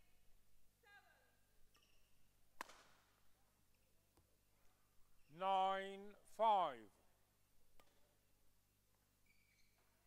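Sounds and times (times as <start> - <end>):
shoes squeaking on court floor: 1.6 - 2.2, 9.2 - 10.0
racket hitting shuttlecock: 2.6 - 3.1.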